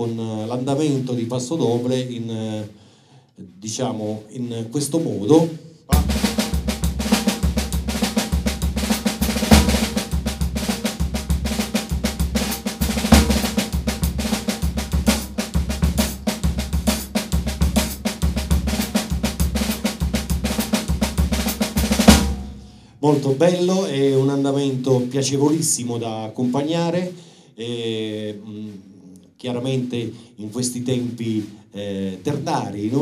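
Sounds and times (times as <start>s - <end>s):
cymbal accents: 5.9s - 22.9s
drum kit groove: 5.9s - 25.9s, 29.5s - 33.0s.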